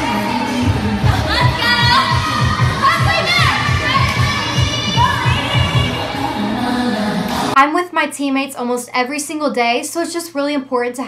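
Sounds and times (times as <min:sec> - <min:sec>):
dance music with steady beat: 0:00.0 - 0:07.6.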